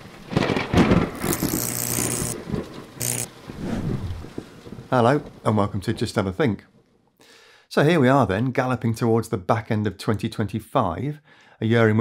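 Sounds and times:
rumbling noisy swell: 0:03.4 - 0:04.5
hissing whooshes: 0:03.4 - 0:04.6.

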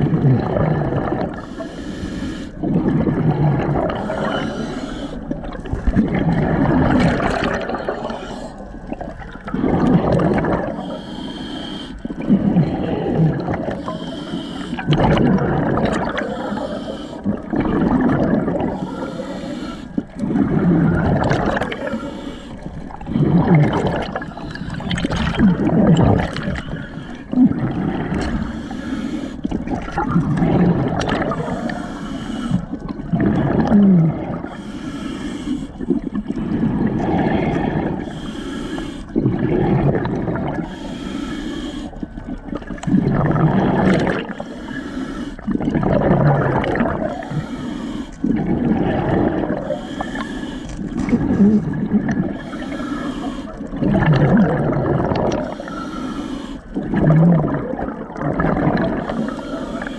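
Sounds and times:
exhaust bubbles rushing: 0:00.0 - 0:01.4, 0:02.6 - 0:04.0, 0:05.7 - 0:08.2, 0:08.9 - 0:10.8, 0:14.8 - 0:16.2, 0:17.3 - 0:18.7, 0:20.2 - 0:22.0, 0:23.0 - 0:28.5, 0:29.5 - 0:31.4, 0:45.5 - 0:47.1, 0:53.8 - 0:55.6, 0:56.8 - 0:59.2
diver breathing through regulator: 0:00.9 - 0:05.9, 0:06.6 - 0:59.9.

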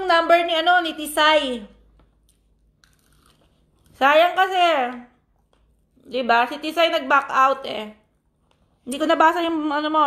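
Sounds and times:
food crunching: 0:02.0 - 0:04.0.

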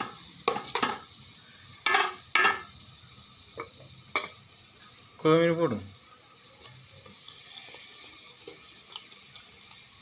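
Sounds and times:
masala sizzling in a pot: 0:00.0 - 0:10.0.

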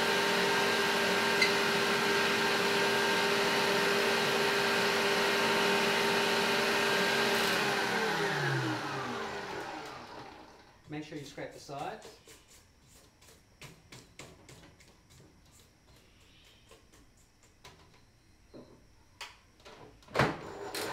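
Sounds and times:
stand mixer running: 0:00.0 - 0:10.6.

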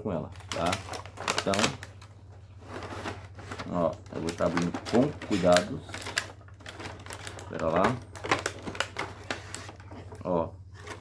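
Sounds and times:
plastic packaging crackling and clicking: 0:00.3 - 0:11.0.

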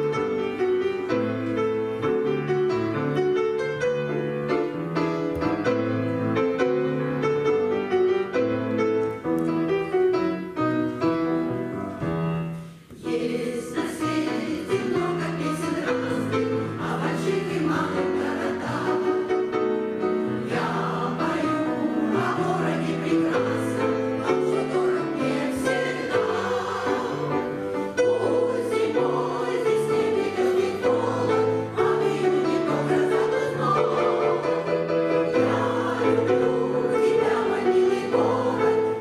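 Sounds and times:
piano chords: 0:00.0 - 0:39.0
women's choir singing: 0:12.9 - 0:39.0.

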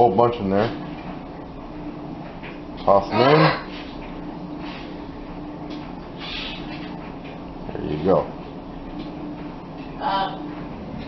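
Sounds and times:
steady hum: 0:00.0 - 0:11.0.

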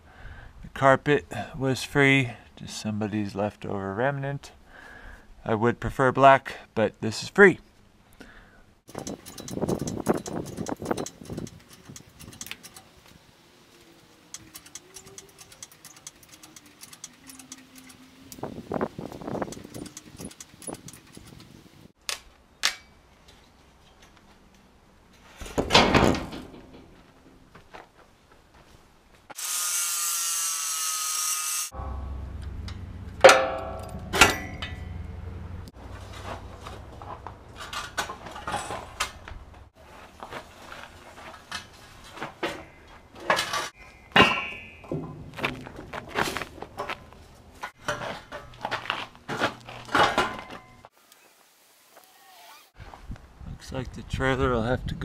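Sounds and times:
knocks and clatter: 0:08.9 - 0:12.8, 0:31.8 - 0:39.7
angle grinder cutting steel: 0:14.2 - 0:18.5, 0:29.4 - 0:32.8.

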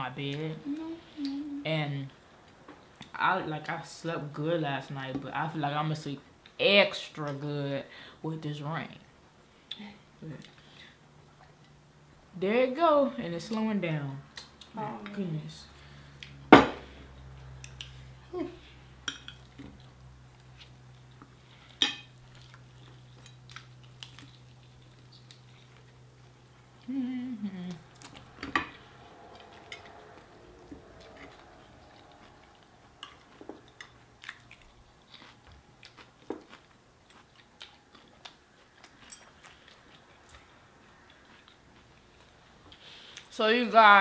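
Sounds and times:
low steady hum: 0:00.0 - 0:44.0
crunching and chewing food: 0:19.3 - 0:26.9, 0:27.7 - 0:43.3.

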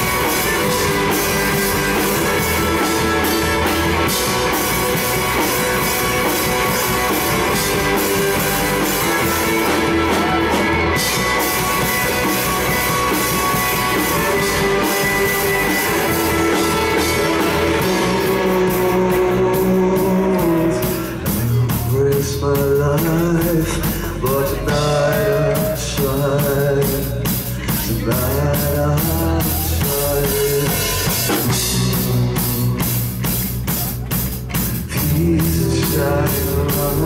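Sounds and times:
rock band playing live: 0:00.0 - 0:37.0.

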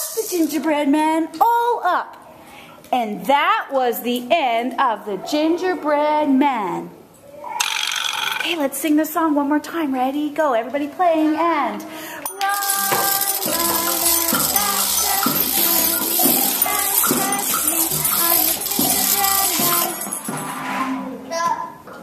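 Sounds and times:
rattles and tambourines shaking: 0:07.6 - 0:08.6, 0:12.2 - 0:21.0
children singing a chant: 0:12.4 - 0:21.0.

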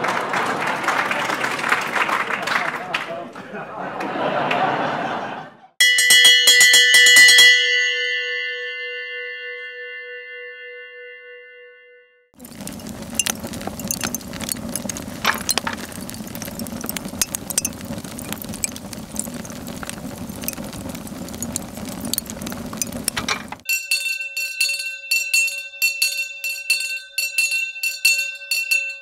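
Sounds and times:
metal hand bell ringing: 0:05.8 - 0:07.9, 0:23.6 - 0:29.0
food sizzling on a grill: 0:12.4 - 0:23.7.

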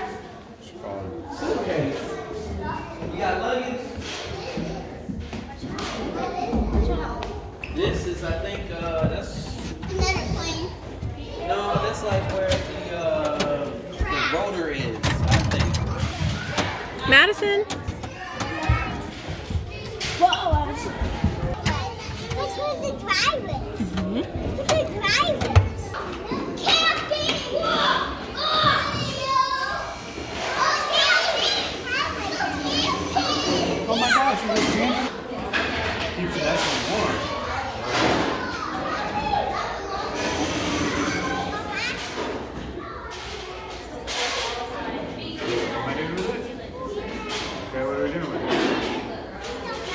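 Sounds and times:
children chattering: 0:00.0 - 0:49.9.

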